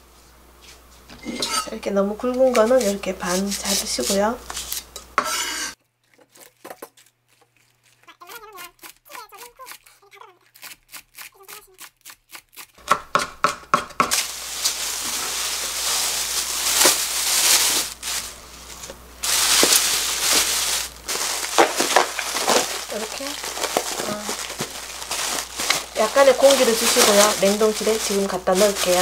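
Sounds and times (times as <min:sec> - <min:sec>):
knife chopping on wooden board: 0:12.8 - 0:14.2
plastic rustling and crinkling: 0:14.1 - 0:29.0.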